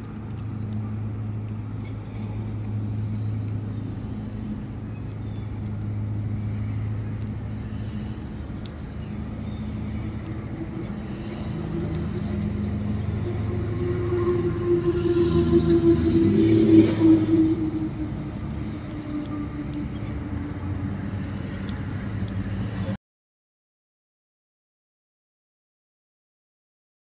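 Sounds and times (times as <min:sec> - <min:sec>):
low motor hum: 0:00.0 - 0:23.0
squirrel gnawing peanuts: 0:00.0 - 0:23.0.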